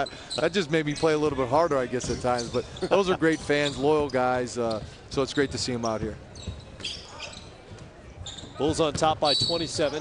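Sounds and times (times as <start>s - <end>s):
low arena murmur: 0.0s - 10.0s
basketball bouncing on court: 1.9s - 2.6s, 3.3s - 7.0s, 7.7s - 10.0s.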